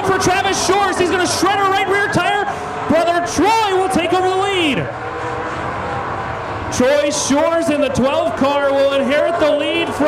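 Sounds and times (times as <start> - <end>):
commentator speaking: 0.0 - 4.9, 6.7 - 10.0
race car engines droning: 0.0 - 10.0.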